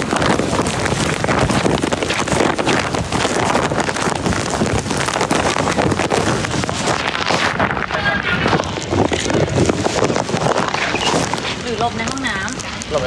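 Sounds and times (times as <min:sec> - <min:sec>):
rain on wet pavement: 0:00.0 - 0:13.0
wind buffeting microphone: 0:00.0 - 0:13.0.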